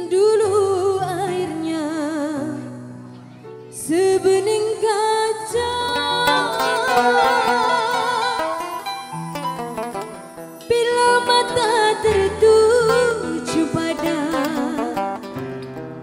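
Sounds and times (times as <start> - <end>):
woman singing with vibrato: 0.0 - 3.0, 3.8 - 9.6, 10.6 - 15.3
live band playing: 5.5 - 16.0.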